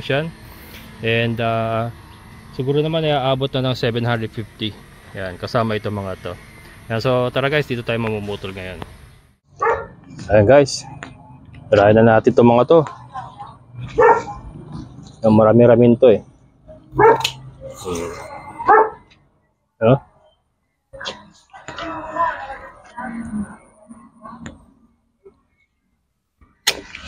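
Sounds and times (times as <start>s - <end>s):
dog barking: 9.6s - 10.0s, 14.0s - 14.4s, 17.0s - 17.4s, 18.6s - 19.1s.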